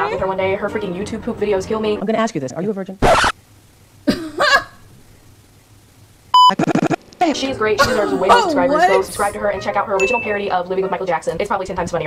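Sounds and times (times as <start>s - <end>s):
censor bleep: 6.4s - 7.0s.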